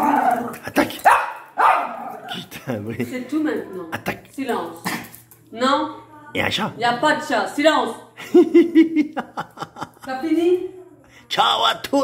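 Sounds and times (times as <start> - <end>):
small dog barking excitedly: 1.0 - 2.2.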